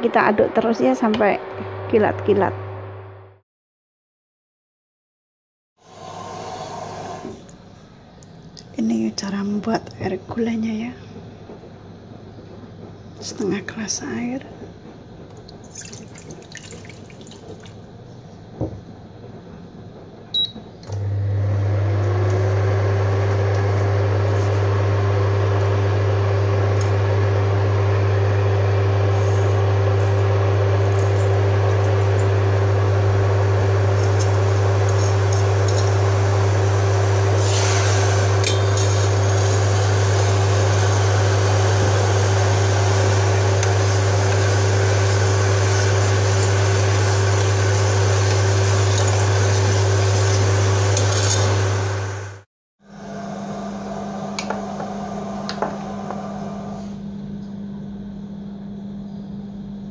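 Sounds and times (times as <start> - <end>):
induction cooktop humming: 6.0 - 59.9.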